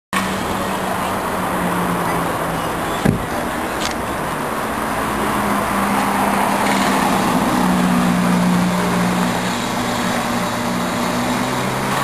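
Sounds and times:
street traffic: 0.1s - 12.0s
steady engine hum: 0.2s - 12.0s.

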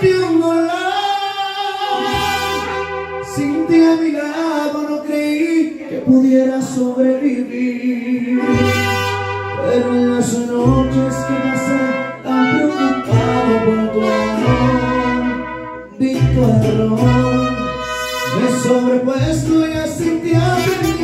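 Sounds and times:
mariachi band playing: 0.0s - 21.0s.

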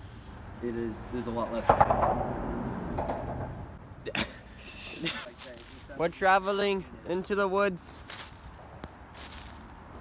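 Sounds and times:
footsteps through dry leaves: 5.2s - 10.0s.

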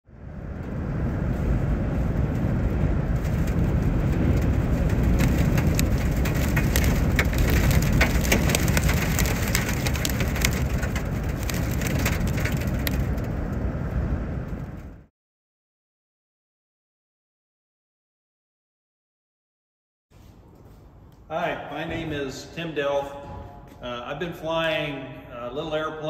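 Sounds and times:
strong wind on microphone: 0.1s - 15.1s
sharp ticks and pops: 3.2s - 13.6s.

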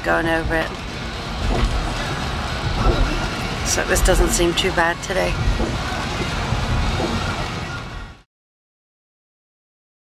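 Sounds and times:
car road noise in heavy rain: 0.0s - 8.2s.

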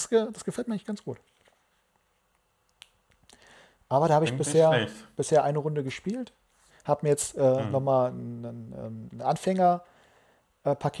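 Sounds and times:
man's voice: 4.0s - 5.2s, 7.3s - 8.2s.

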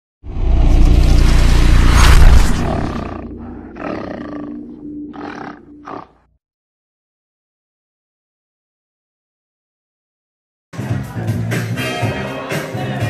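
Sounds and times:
heavy rumble: 0.3s - 3.8s
beast-like roar: 2.0s - 6.3s.

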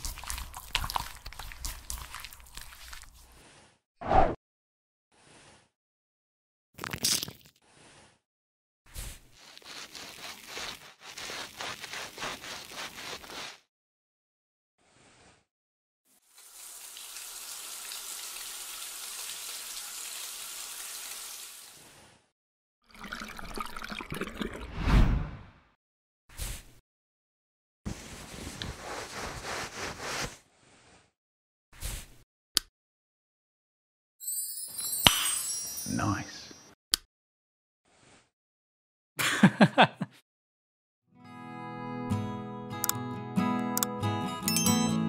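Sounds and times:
brush scrubbing hair: 0.0s - 3.4s, 9.3s - 13.7s, 27.9s - 30.4s
short rustle: 9.4s - 13.6s, 27.9s - 30.4s.

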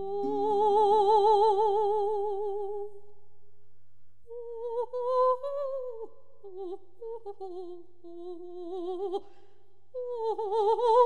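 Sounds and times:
soprano voice singing: 0.0s - 3.1s, 4.3s - 11.0s.

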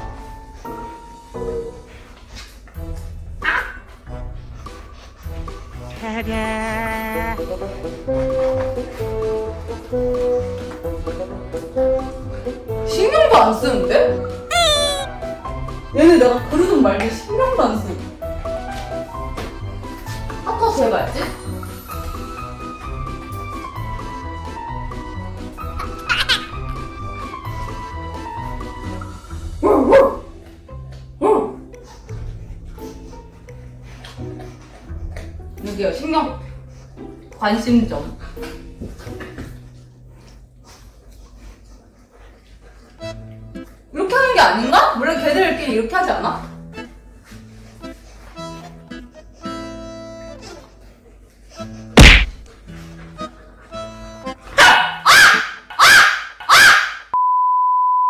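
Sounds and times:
background music: 0.0s - 40.6s, 42.9s - 50.9s, 51.5s - 56.7s
woman imitating dog bark: 6.0s - 7.5s, 14.5s - 15.1s
dog barking sharply: 54.6s - 57.1s
steady test-tone beep: 57.2s - 58.0s.

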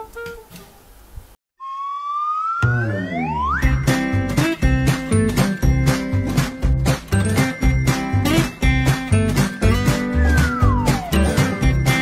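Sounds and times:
rising whistle-like tone: 1.6s - 3.9s, 9.9s - 11.6s
background music: 2.4s - 12.0s.

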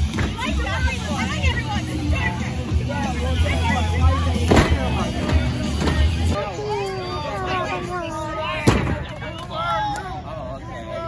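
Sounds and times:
crowd voices and shouts: 0.0s - 11.0s.

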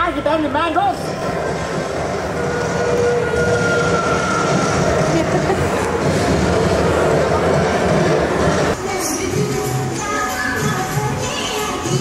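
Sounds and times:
ride vehicle running on track: 0.4s - 8.8s.

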